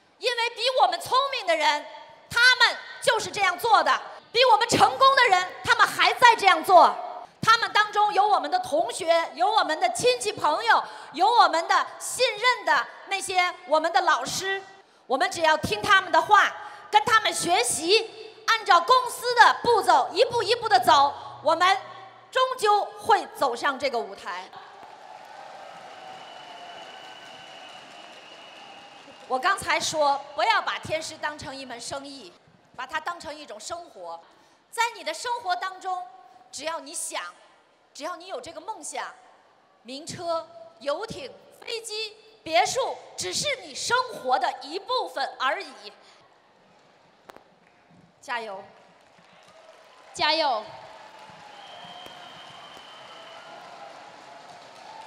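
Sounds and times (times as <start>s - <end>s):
audience applause: 24.6s - 29.3s, 48.8s - 50.2s, 50.8s - 55.0s.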